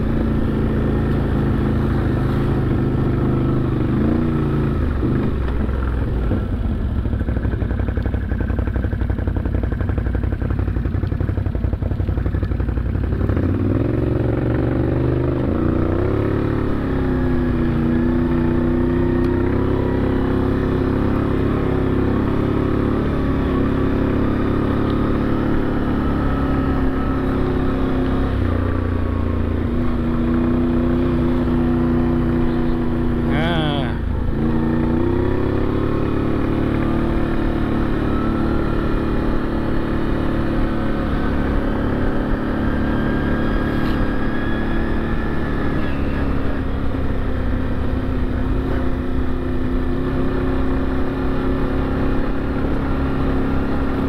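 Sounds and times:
atv engine running: 0.0 - 54.0.

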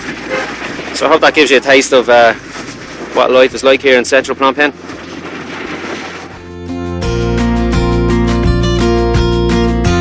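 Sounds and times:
street traffic: 0.0 - 8.6
acoustic guitar music: 0.1 - 10.0.

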